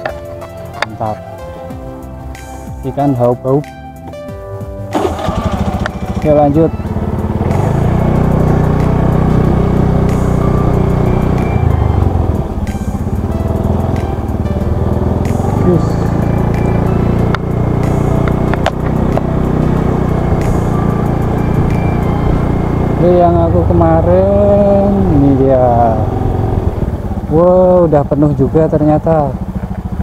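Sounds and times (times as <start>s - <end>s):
motorcycle engine running: 4.7s - 30.0s.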